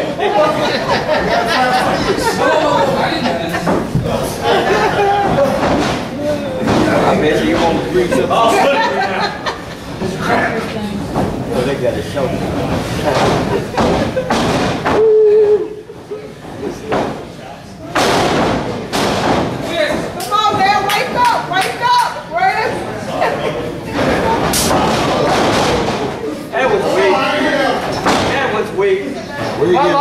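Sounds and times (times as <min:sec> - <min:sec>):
spectators chattering: 0:00.0 - 0:30.0
voices: 0:00.0 - 0:30.0.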